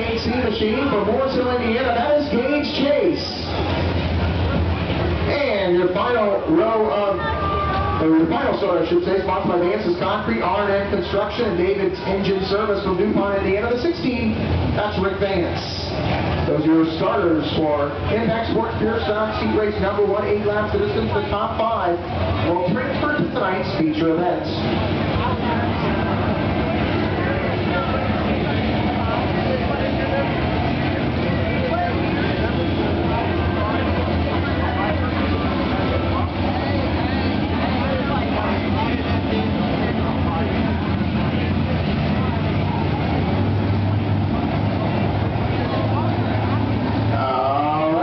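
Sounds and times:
race car engines rumbling: 0.0 - 48.0.

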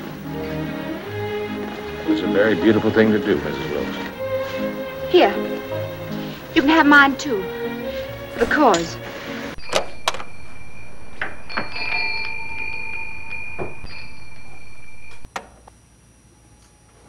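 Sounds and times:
high ringing tone: 9.6 - 15.3.

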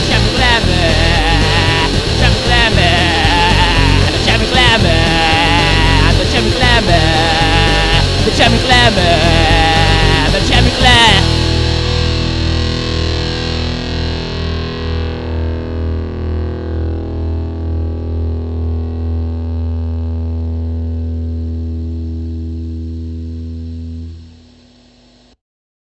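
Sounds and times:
deep low drone: 0.0 - 24.6
distorted electric guitar chord ringing: 0.0 - 25.4.

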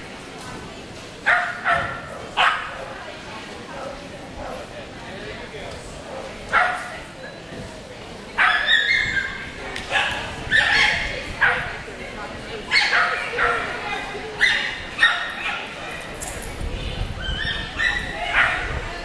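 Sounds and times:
dog barking: 1.3 - 2.8, 6.5 - 6.9, 8.4 - 9.0, 9.9 - 11.7, 14.4 - 15.7, 17.8 - 18.8.

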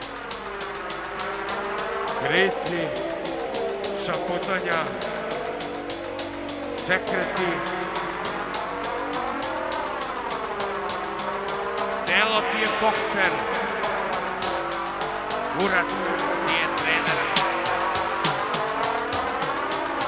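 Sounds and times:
industrial electronic music: 0.0 - 20.0.

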